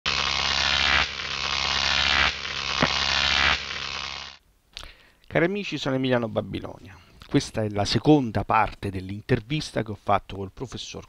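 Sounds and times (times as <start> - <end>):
harsh electronic buzzing: 0.1 - 4.4.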